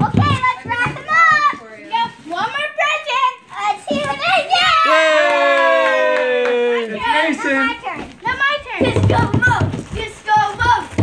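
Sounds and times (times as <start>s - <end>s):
children calling and chattering: 0.0s - 5.9s, 6.5s - 11.0s.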